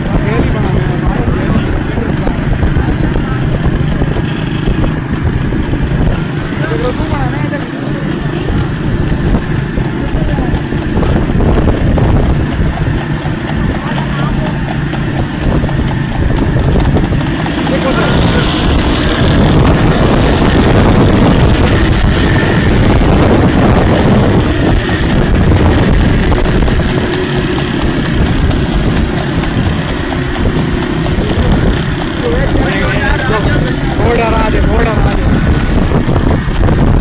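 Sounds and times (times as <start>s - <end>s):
motorcycle engines running: 0.0s - 37.0s
wind noise on microphone: 0.0s - 37.0s.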